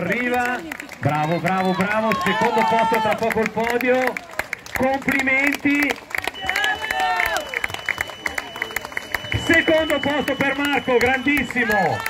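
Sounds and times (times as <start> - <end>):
crowd clapping: 0.0 - 12.0.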